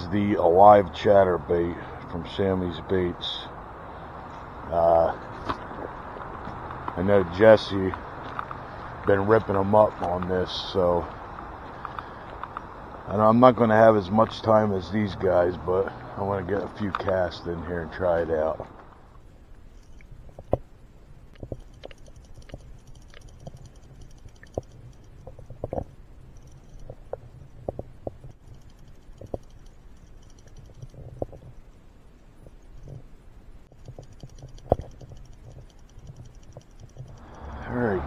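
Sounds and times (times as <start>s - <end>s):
underwater clicks and knocks: 21.4s - 25.9s, 33.8s - 37.3s.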